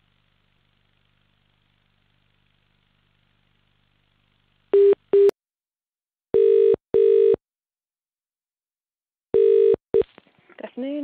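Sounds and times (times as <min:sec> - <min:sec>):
telephone ringback tone: 0:06.4 - 0:07.4, 0:09.4 - 0:10.0.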